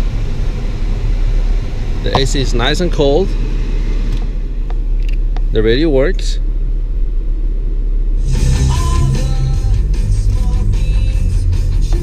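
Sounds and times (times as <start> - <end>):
rock music on car radio: 8.2 - 12.0.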